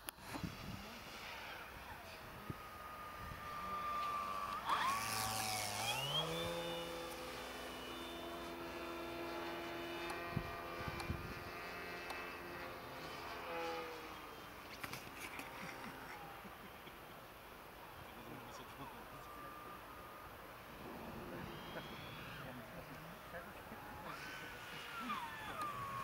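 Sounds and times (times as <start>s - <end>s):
model airplane engine: 0.0s - 26.0s.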